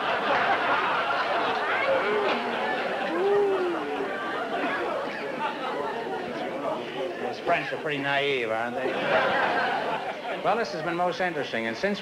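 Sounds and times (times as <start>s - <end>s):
voices chattering: 0.0s - 12.0s.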